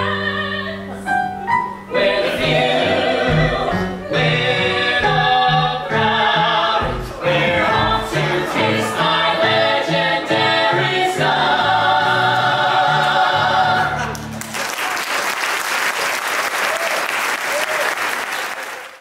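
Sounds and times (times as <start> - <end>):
keyboard accompaniment: 0.0 - 14.6
small cast singing: 1.9 - 14.2
audience applauding: 13.8 - 19.0.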